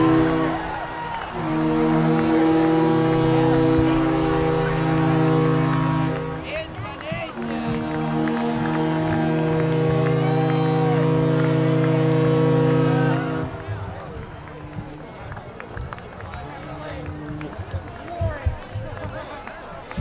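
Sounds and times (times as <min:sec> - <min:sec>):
band holding loud chord: 0:00.0 - 0:18.2
crowd noise: 0:00.0 - 0:20.0
people clapping: 0:00.0 - 0:20.0.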